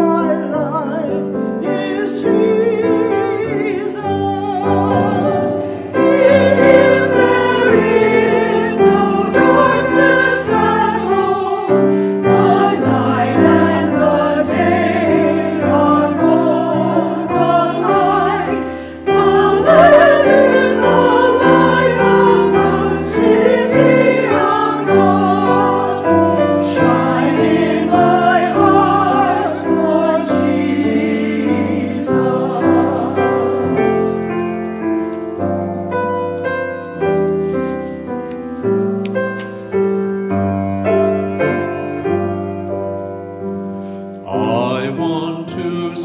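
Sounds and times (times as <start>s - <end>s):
grand piano accompaniment: 0.0s - 46.0s
choir singing: 1.8s - 35.4s, 44.3s - 46.0s.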